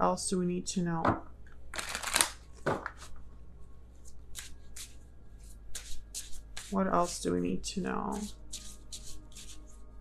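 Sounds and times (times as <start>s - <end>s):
cards being shuffled: 1.8s - 3.1s, 4.0s - 7.2s, 8.1s - 9.8s.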